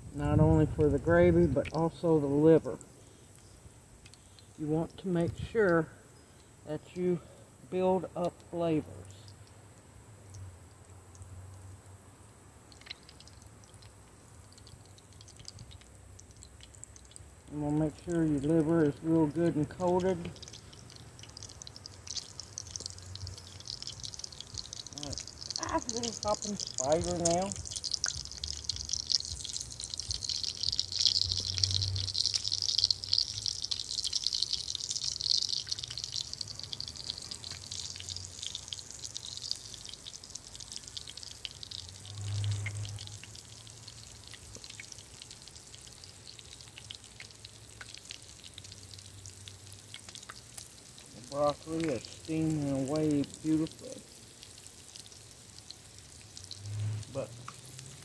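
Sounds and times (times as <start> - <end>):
liver sizzling in a skillet: 12.6 - 58.0.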